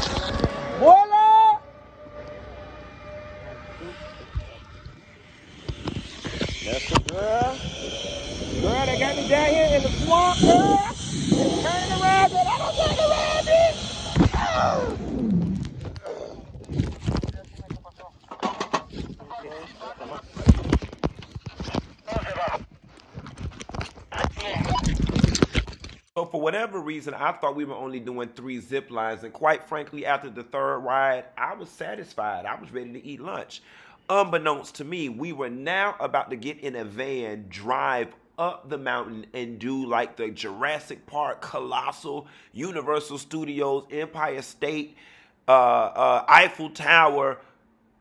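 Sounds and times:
rushing noise: 0:00.0 - 0:15.9
person crying out: 0:00.8 - 0:01.6, 0:11.9 - 0:15.0.

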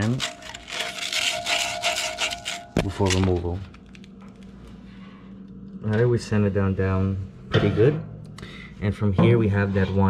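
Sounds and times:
sandpaper rubbing on steel shaft: 0:00.0 - 0:02.7.

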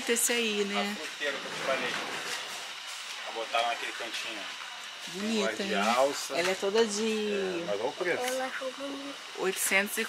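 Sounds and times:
store background hum: 0:00.0 - 0:10.0.

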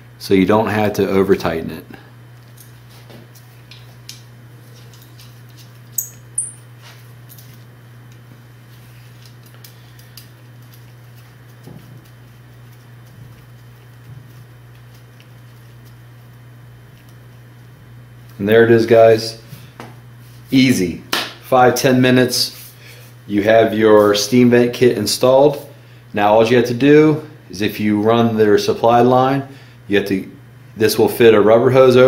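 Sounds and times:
steady low hum: 0:00.0 - 0:32.0
sharp high metal clinks: 0:06.0 - 0:06.7.

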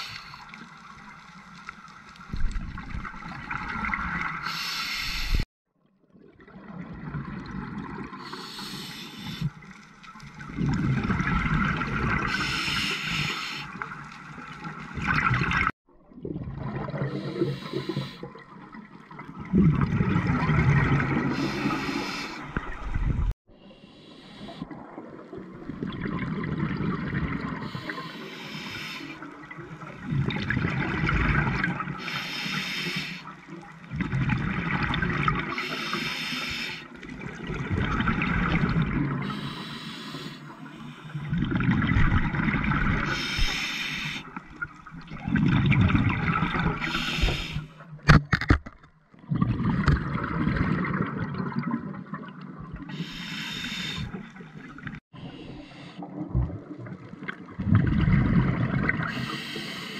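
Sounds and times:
regulator inhalation hiss: 0:04.4 - 0:05.4, 0:08.2 - 0:09.5, 0:12.3 - 0:13.7, 0:17.3 - 0:18.2, 0:21.3 - 0:22.5, 0:23.7 - 0:24.7, 0:27.7 - 0:29.2, 0:32.0 - 0:33.3, 0:35.6 - 0:36.9, 0:39.2 - 0:41.2, 0:43.1 - 0:44.3, 0:46.8 - 0:47.7, 0:52.9 - 0:54.2, 0:59.1 - 0:59.9
exhaled bubbles rushing: 0:10.3 - 0:12.8, 0:13.9 - 0:23.3, 0:24.7 - 0:27.8, 0:29.4 - 0:32.0, 0:33.8 - 0:35.6, 0:37.1 - 0:39.4, 0:41.2 - 0:43.5, 0:44.2 - 0:47.6, 0:49.2 - 0:53.0, 0:56.0 - 0:59.4.

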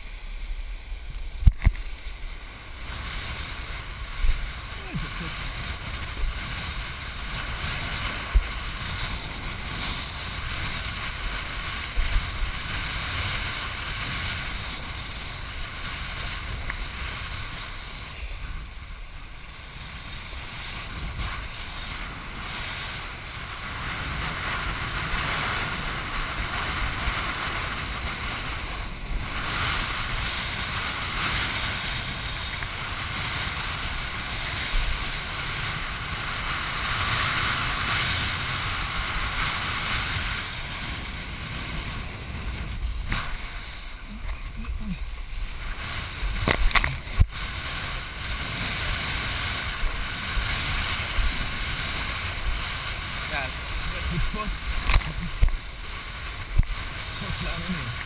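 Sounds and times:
water rushing hiss: 0:00.0 - 0:58.0
wind buffeting camera: 0:00.0 - 0:58.0.

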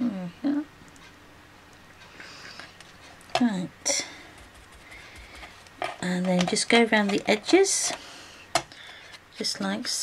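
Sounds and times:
soft tapping and handling: 0:02.6 - 0:08.0.

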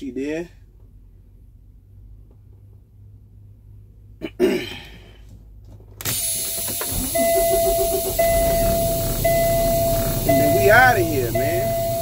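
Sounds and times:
truck cab rumble and hiss: 0:04.9 - 0:12.0
dashboard warning chime: 0:06.3 - 0:12.0.

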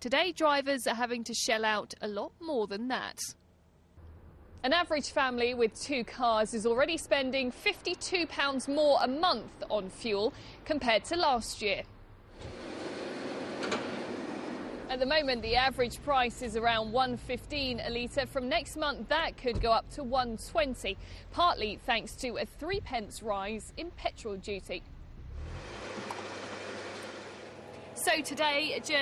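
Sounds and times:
fuel flowing through nozzle: 0:12.4 - 0:14.9, 0:25.4 - 0:28.0
fuel flowing from pump nozzle: 0:25.6 - 0:27.9.

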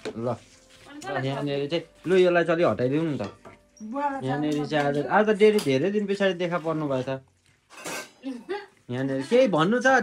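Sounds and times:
metal plates and utensils clattering: 0:07.7 - 0:08.2.

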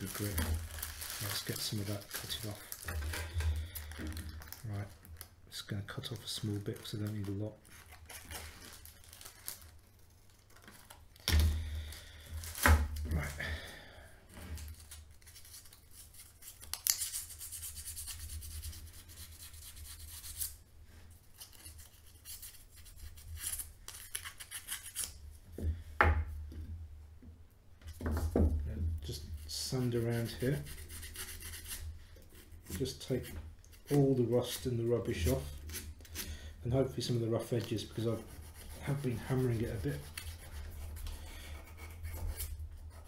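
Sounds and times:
sandpaper rubbing on metal: 0:17.0 - 0:20.5, 0:38.0 - 0:41.0.

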